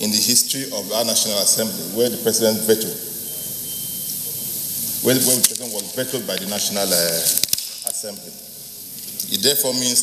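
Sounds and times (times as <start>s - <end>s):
room tone hiss: 0.0s - 10.0s
faint thin high tone: 3.2s - 4.5s.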